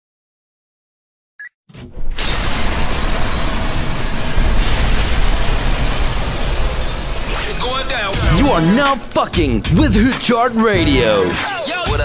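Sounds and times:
explosion effect: 2.2s - 9.1s.

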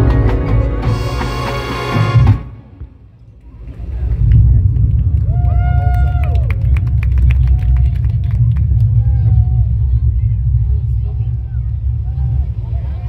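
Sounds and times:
low rumble on microphone: 2.5s - 13.0s.

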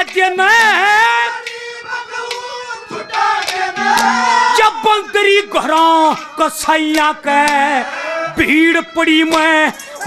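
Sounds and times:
man singing through pa: 0.0s - 9.8s.

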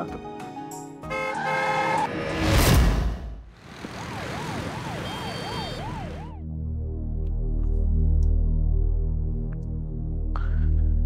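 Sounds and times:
ambulance siren wailing: 3.7s - 6.4s.

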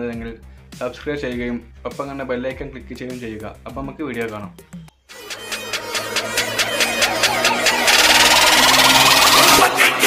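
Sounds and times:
electronic whoosh and riser: 5.1s - 9.8s.

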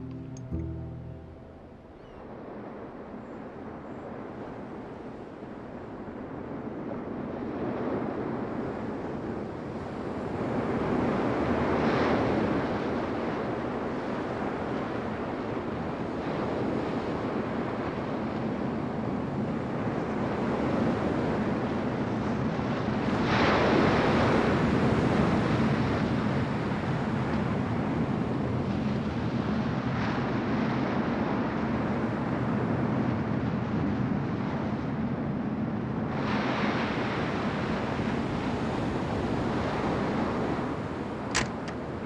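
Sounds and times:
ocean waves breaking on beach: 4.1s - 42.0s.

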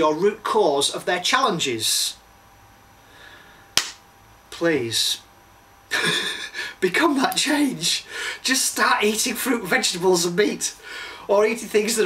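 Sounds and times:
sharp click: 3.8s - 4.0s.

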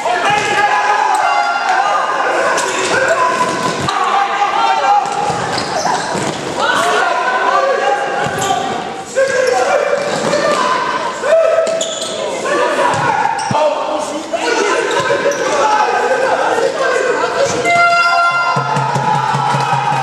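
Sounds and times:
players shouting: 0.0s - 20.0s.

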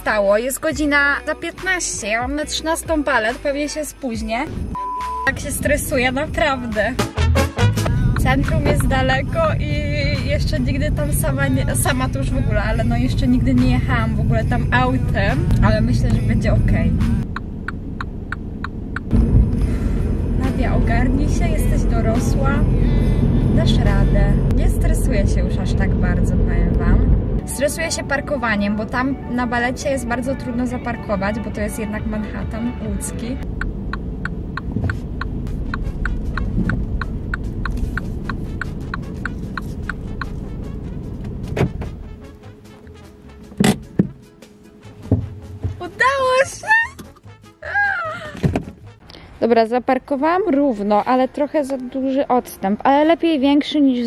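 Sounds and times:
car cabin engine rumble: 4.3s - 7.0s, 7.8s - 47.2s
turn signal clicking: 7.8s - 9.2s, 17.2s - 19.6s, 33.4s - 40.5s
sharp knocks: 43.5s - 44.3s, 45.0s - 45.8s.

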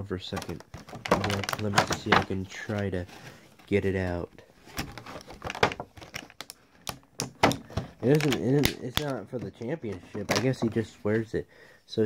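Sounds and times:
sharp plastic clicks and taps: 6.4s - 10.5s.

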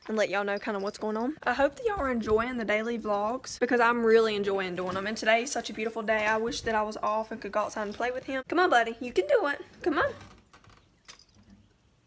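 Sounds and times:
woman calling: 0.6s - 10.3s.

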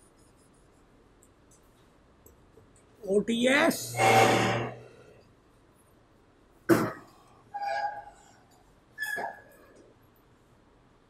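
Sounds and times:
person coughing: 6.7s - 7.2s.

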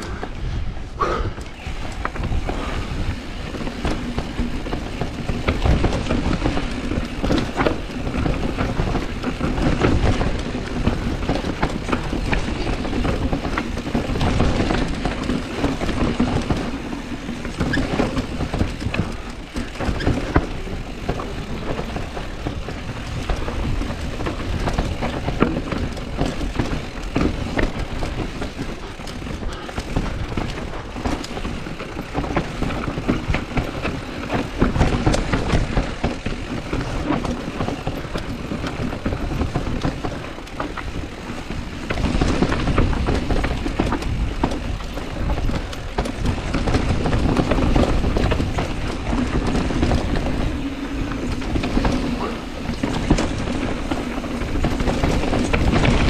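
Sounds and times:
bike tyres rattling over stones: 0.0s - 56.0s
bike knocking over rocks: 1.4s - 56.0s.

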